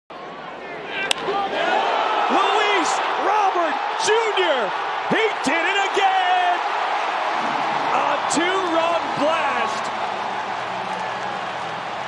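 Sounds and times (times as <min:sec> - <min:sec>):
ballpark crowd noise: 0:00.1 - 0:12.0
baseball bat hitting ball: 0:01.1 - 0:01.3.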